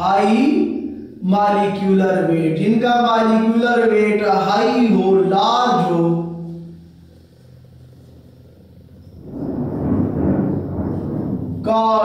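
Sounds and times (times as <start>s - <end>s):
faint steady hum: 0.0s - 12.0s
low pitchless noise: 6.6s - 11.8s.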